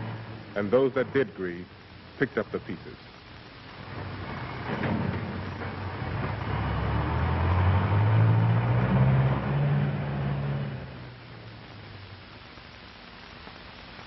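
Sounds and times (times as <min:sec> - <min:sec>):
heavy truck engine driving past: 0:03.9 - 0:11.2.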